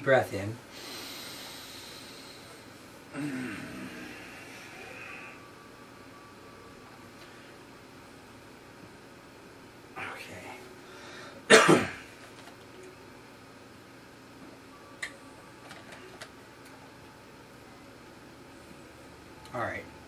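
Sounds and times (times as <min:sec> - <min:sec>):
person clearing throat: 0:03.1 - 0:03.8, 0:11.5 - 0:12.1
loud sharp cough: 0:11.5 - 0:12.0.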